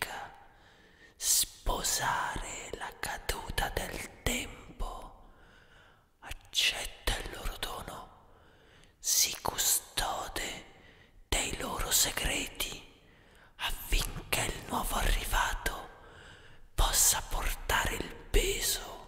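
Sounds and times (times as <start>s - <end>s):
person whispering hoarsely: 0.0s - 0.4s, 1.2s - 5.2s, 6.2s - 8.1s, 9.0s - 10.7s, 11.3s - 12.9s, 13.6s - 16.0s, 16.7s - 19.0s.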